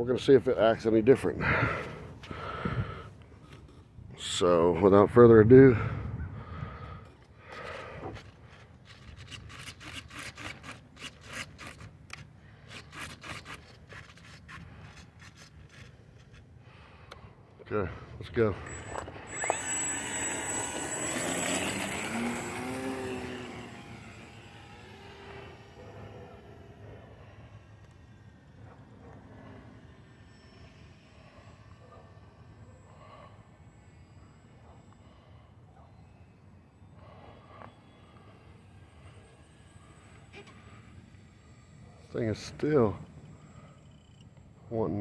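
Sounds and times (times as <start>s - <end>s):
model airplane electric motor whine: 6.8s - 16.6s, 18.2s - 45.0s.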